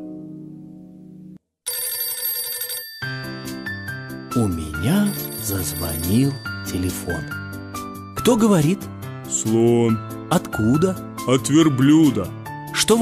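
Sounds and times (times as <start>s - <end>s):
telephone bell ringing: 1.7s - 7.7s
bouncy children's music: 3.0s - 13.0s.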